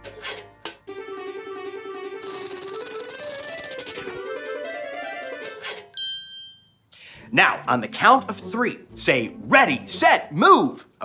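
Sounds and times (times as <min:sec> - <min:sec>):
fast rattle: 0:02.2 - 0:04.0
wavering pitched tone: 0:02.2 - 0:04.1
bright bell-like ding: 0:05.9 - 0:06.8.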